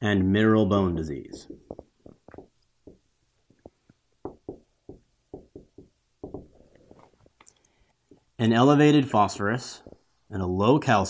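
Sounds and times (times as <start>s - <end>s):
marker writing on whiteboard: 0.9s - 7.1s.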